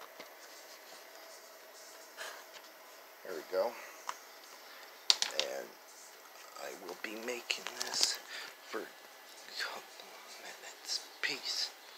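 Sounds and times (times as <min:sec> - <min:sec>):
person whispering: 0:09.4 - 0:11.8.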